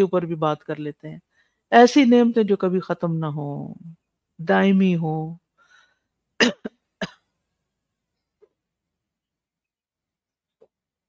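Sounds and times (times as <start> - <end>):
woman coughing: 6.4 - 7.3.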